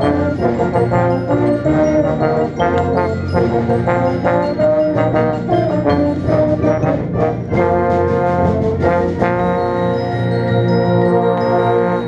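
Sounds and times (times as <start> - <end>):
bass trombone playing: 0.0 - 12.0
concert band playing: 0.0 - 12.0.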